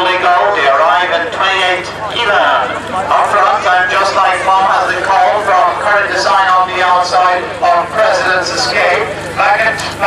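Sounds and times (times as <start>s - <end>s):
man calling a harness race: 0.0s - 10.0s.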